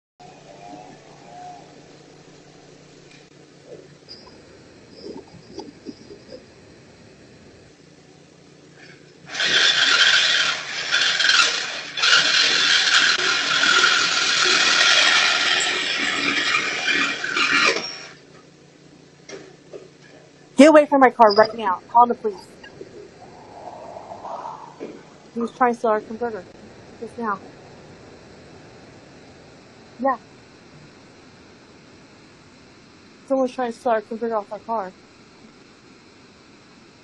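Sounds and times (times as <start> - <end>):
saw cutting metal pipe: 9.3 - 18.2.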